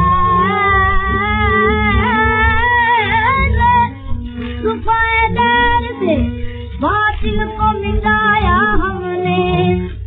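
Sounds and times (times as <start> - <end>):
instrumental accompaniment: 0.0 - 10.0
woman singing: 0.0 - 10.0.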